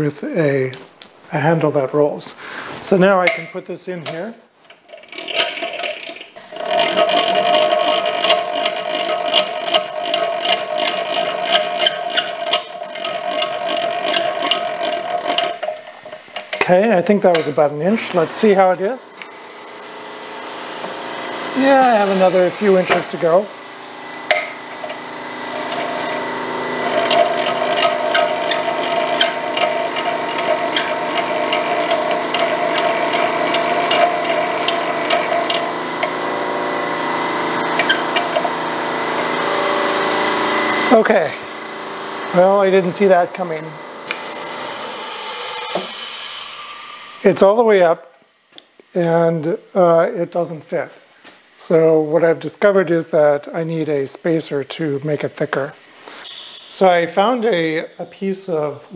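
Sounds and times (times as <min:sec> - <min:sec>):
wrench rubbing on screw: 0:04.9 - 0:19.7, 0:25.5 - 0:36.1, 0:37.7 - 0:38.4
machine press hissing: 0:05.1 - 0:23.5, 0:24.1 - 0:41.4, 0:42.3 - 0:57.3.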